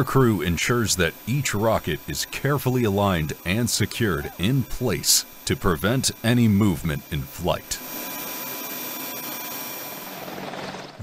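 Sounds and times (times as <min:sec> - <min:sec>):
helicopter turbine whine: 0:00.0 - 0:11.0.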